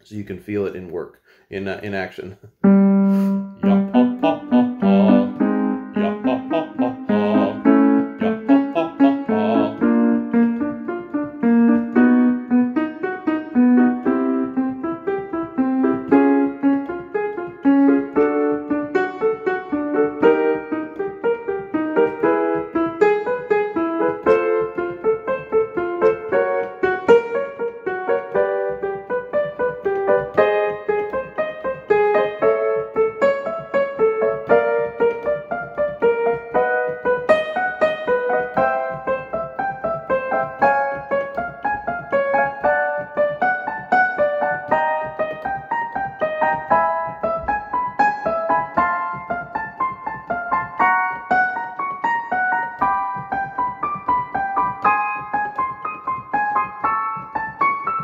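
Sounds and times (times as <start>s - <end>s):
piano playing quick note pattern: 2.6s - 58.0s.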